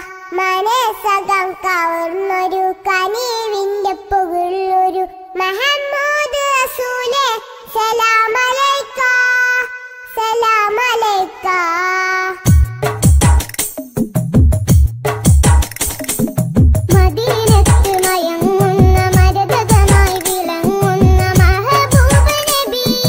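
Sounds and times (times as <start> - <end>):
person singing devotional song: 0.0 - 13.0, 16.9 - 23.0.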